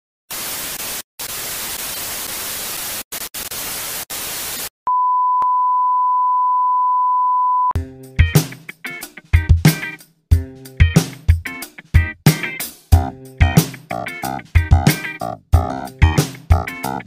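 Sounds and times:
tv static hiss: 0.3 - 4.7
test-tone beep: 4.9 - 7.8
funk music with drums: 7.8 - 17.0.

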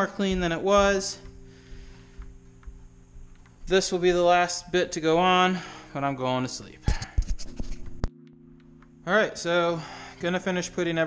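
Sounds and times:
faint steady hum: 0.0 - 7.2.

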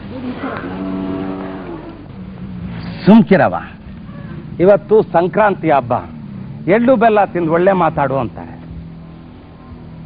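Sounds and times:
cow mooing: 0.2 - 2.1.

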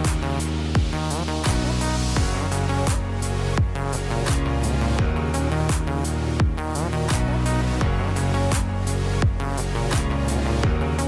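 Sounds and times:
background music with drum beat: 0.0 - 11.0.

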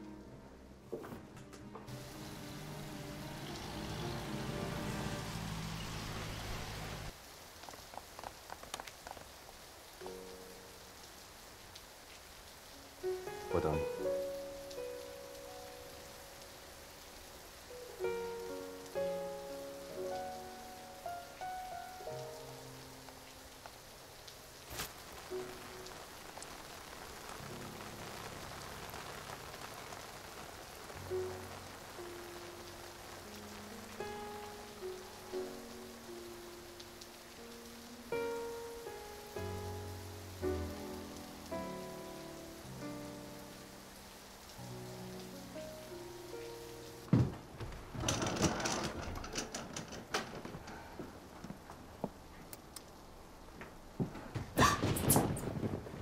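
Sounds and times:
slow melody: 0.0 - 7.2, 12.6 - 24.6, 30.6 - 47.1
heavy rain on pavement: 1.9 - 56.0.

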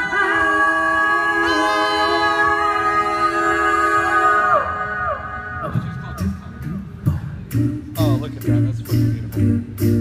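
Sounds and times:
a cappella group singing: 0.0 - 5.8
vocal percussive beats: 5.1 - 10.0
low sung bass line: 5.6 - 10.0.

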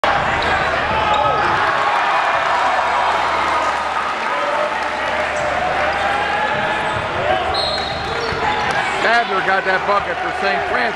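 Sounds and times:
crowd voices and shouting: 0.0 - 10.9.

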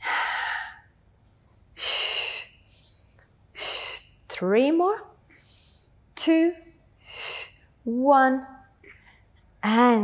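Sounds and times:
woman breathing deliberately: 0.0 - 1.0, 1.7 - 4.3, 5.3 - 6.0, 7.0 - 7.8.

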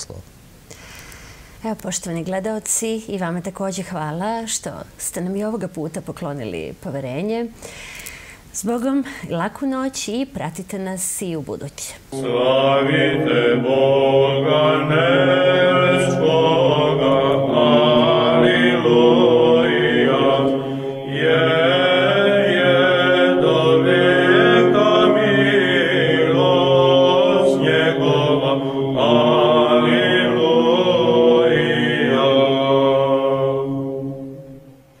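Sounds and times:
church chant by several voices: 12.1 - 34.8.

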